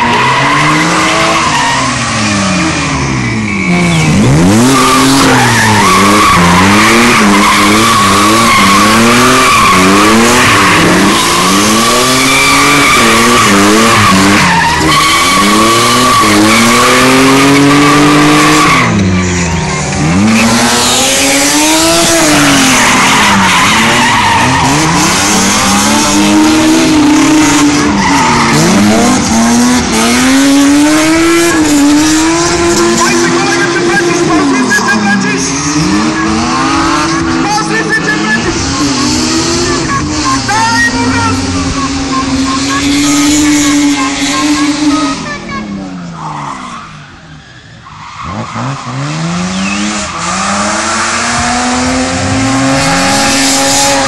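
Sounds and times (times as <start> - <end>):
car engine revving: 0.0 - 47.2, 47.9 - 54.0
tyres squealing: 3.2 - 54.0.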